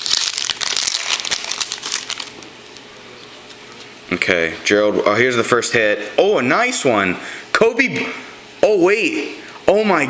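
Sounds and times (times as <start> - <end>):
wrapper crinkling: 0.0 - 2.9.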